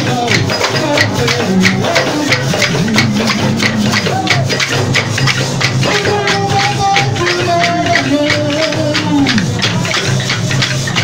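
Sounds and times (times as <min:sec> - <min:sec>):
large frame drums beating: 0:00.0 - 0:11.0
wooden clappers clacking: 0:00.0 - 0:11.0.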